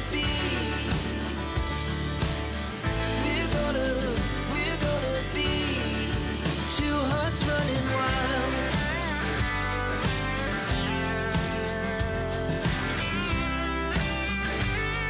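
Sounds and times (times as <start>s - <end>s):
pop song: 0.0s - 15.0s.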